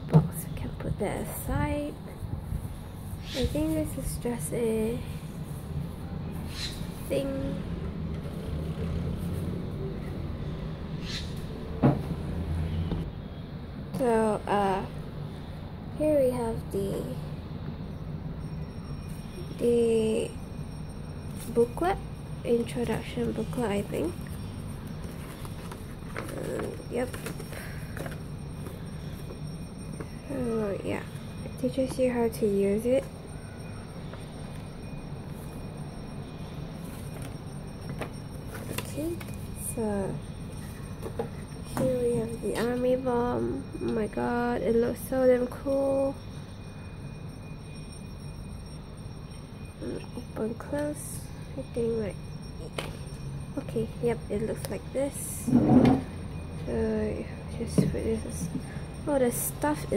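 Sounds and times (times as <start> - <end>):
passing motor vehicle rumble: 5.0 - 18.5.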